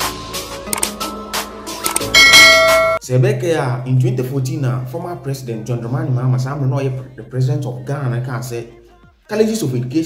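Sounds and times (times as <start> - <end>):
bell-like chime: 2.1 - 3.0
man's voice: 3.0 - 10.0.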